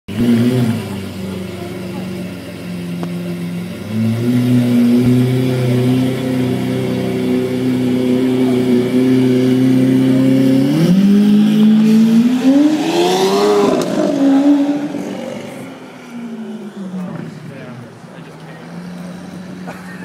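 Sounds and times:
car engine accelerating: 0.1s - 20.0s.

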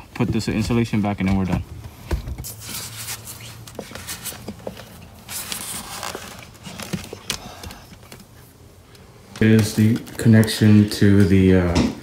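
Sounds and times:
insulation rustling and scuffing: 0.3s - 8.3s.

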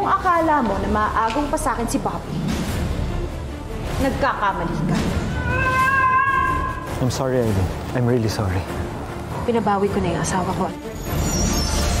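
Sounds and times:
dramatic background music: 0.0s - 12.0s.

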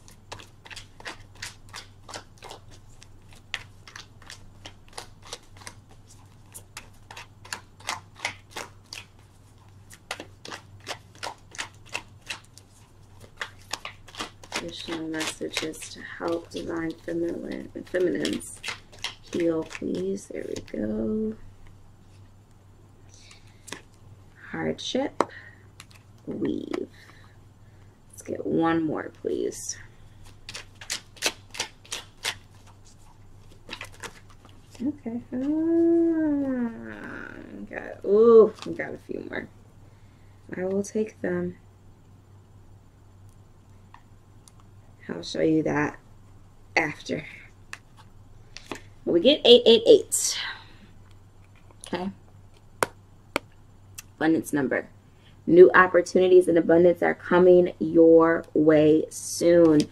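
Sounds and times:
cards being shuffled: 0.0s - 21.4s, 25.8s - 27.2s, 30.2s - 35.7s, 38.4s - 39.0s, 47.7s - 48.9s.

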